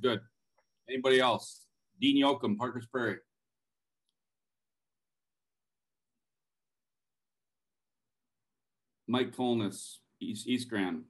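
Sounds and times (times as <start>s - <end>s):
man speaking: 0.0s - 0.2s, 0.9s - 3.3s, 9.1s - 11.0s.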